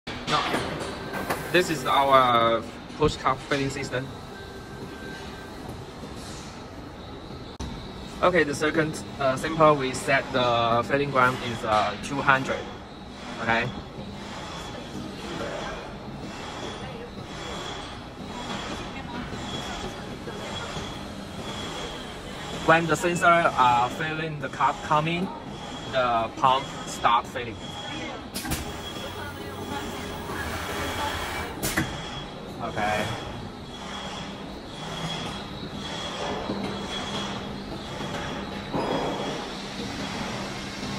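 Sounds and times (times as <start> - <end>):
machine humming with motor whine: 0.1 - 40.9.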